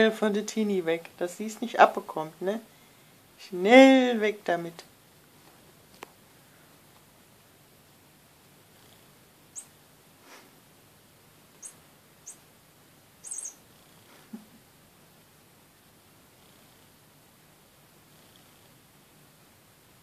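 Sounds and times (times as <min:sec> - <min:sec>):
cat chirping: 0:09.5 - 0:09.8, 0:11.6 - 0:12.5, 0:13.2 - 0:13.6.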